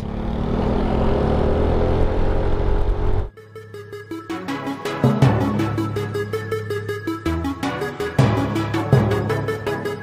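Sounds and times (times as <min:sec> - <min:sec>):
road and wind noise: 0:00.0 - 0:03.3
scooter engine running: 0:00.0 - 0:03.3.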